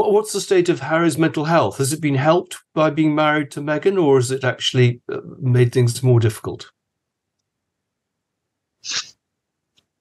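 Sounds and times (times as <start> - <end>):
woman sneezing: 8.8 - 9.1.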